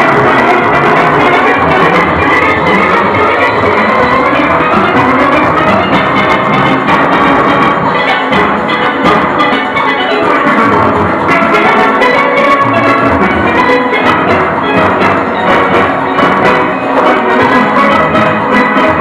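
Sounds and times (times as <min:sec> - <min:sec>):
drums and percussion: 0:00.0 - 0:19.0
steelpans ringing: 0:00.0 - 0:19.0.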